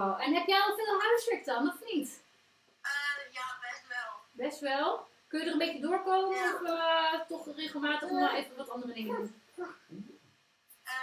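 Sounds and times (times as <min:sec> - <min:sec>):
person speaking: 0:05.9 - 0:10.1.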